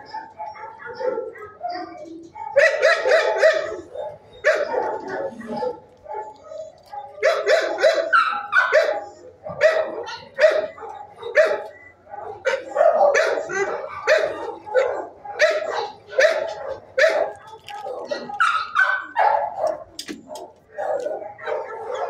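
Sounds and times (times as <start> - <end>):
dogs barking: 0.0 - 22.0.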